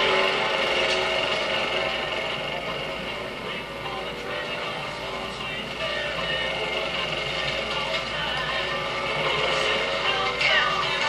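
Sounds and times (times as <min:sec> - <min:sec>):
lawnmower engine running: 0:00.0 - 0:11.0.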